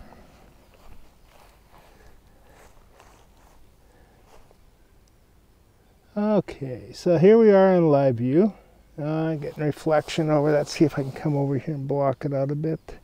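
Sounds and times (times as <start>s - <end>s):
footsteps in long grass: 0.0s - 4.7s, 9.1s - 11.8s.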